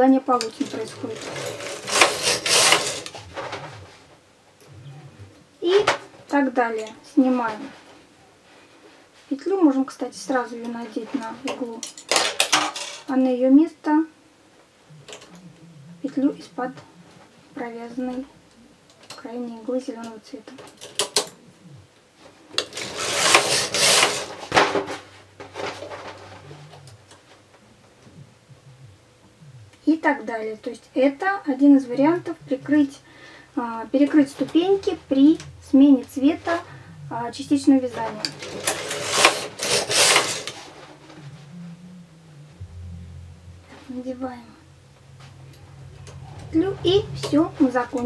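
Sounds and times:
scraping and rubbing: 0.4 - 8.1, 21.8 - 28.9, 33.6 - 48.0
knitting machine tool clicks: 1.3 - 3.1, 22.6 - 24.3, 38.2 - 40.6
quiet handling: 14.6 - 48.0.

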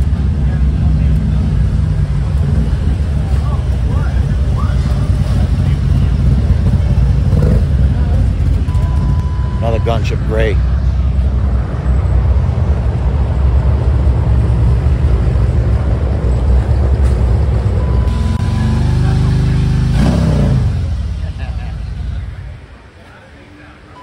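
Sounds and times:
motorcycle engine rumbling and revving: 0.0 - 22.9.

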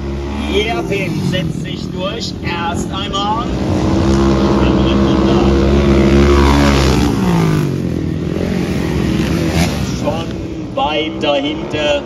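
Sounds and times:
motorcycle engine at high revs: 0.0 - 12.0.

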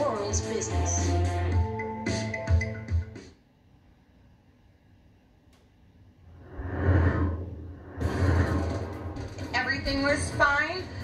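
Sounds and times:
deep rumble: 6.2 - 11.0
whooshes: 6.3 - 9.7.

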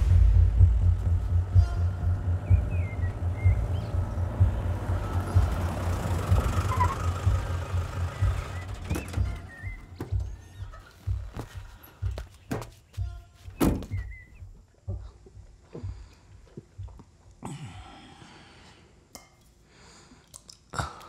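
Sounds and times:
jeep engine rumble: 0.0 - 12.7
film score music: 0.0 - 13.3
bird chirps: 1.6 - 11.3, 12.4 - 14.5.

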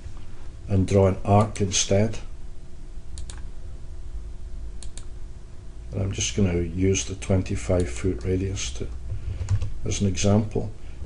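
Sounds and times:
low steady room hum: 0.0 - 11.0
computer mouse clicks: 3.2 - 3.5, 4.8 - 5.1.

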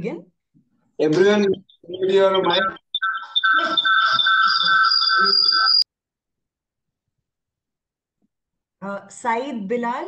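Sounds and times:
person talking: 1.0 - 4.6
high ringing tones: 1.7 - 5.8.

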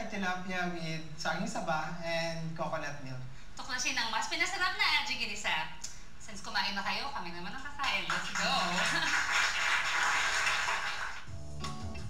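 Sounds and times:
studio audience applauding: 7.8 - 11.3
music sting with bass line: 11.3 - 12.0.

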